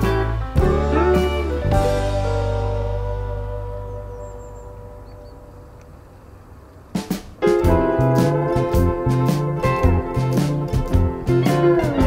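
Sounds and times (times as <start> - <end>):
background music with drum strokes: 0.0 - 4.5, 6.9 - 12.0
held music chord: 0.0 - 6.4, 7.4 - 12.0.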